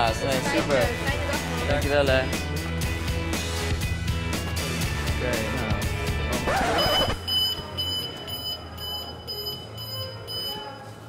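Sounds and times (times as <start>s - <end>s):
anti-theft gate alarm beeping: 6.7s - 11.0s.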